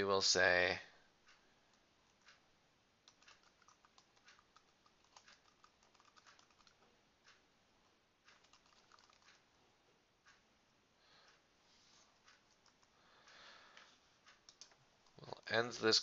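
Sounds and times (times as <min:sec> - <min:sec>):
faint keyboard typing: 0:01.2 - 0:02.4, 0:03.0 - 0:07.4, 0:08.2 - 0:10.4, 0:12.0 - 0:16.0.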